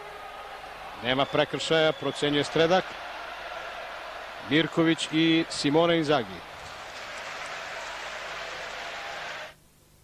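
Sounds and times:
stadium crowd noise: 0.0s - 9.6s.

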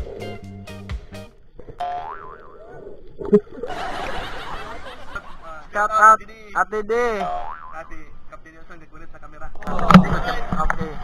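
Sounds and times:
cartoon boing: 1.8s - 3.4s, 7.2s - 7.9s.

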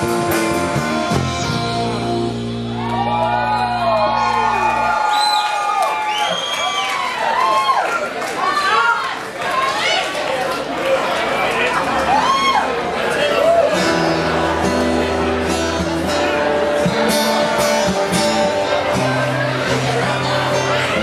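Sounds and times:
rock band final chord: 0.0s - 4.9s
audience cheering and whooping: 2.5s - 10.1s, 11.6s - 14.4s.

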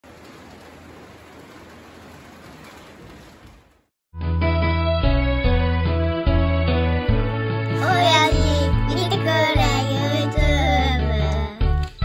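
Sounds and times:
steady rain hissing: 0.0s - 3.9s.

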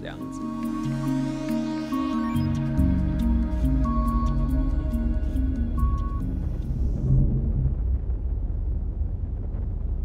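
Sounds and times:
music: 0.0s - 7.7s
low rumble drone: 0.0s - 10.0s.

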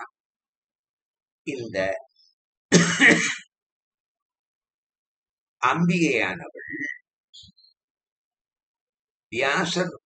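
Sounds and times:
man clearing his throat: 2.7s - 3.5s.

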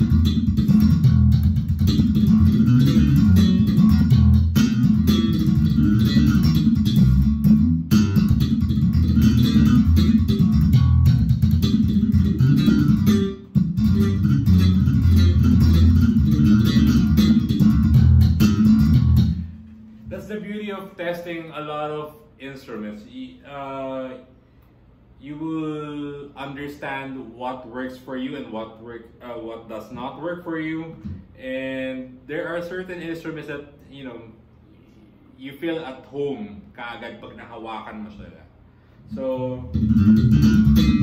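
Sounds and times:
plucked bass guitar notes: 0.0s - 20.3s, 39.1s - 41.0s.

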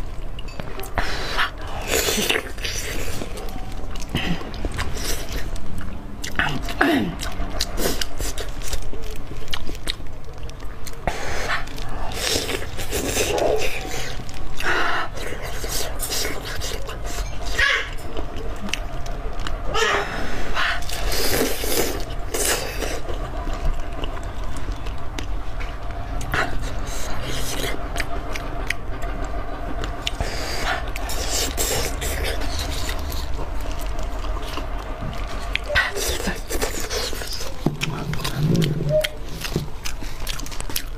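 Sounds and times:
wet chewing mouth sounds: 0.2s - 40.9s.

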